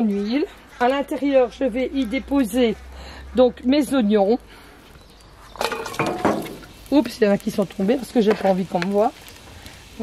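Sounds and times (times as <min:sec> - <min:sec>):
onions sizzling in hot oil: 0:05.6 - 0:10.0.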